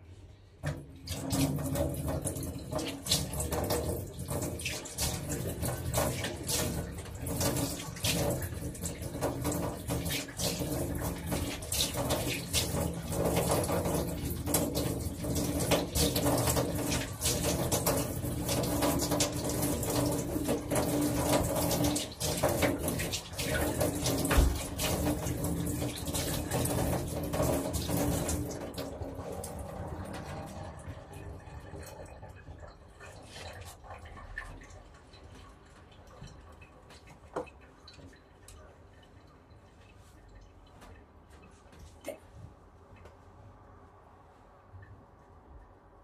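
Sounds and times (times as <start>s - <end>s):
tap running into sink: 0.6s - 31.1s
thump: 24.3s - 24.7s.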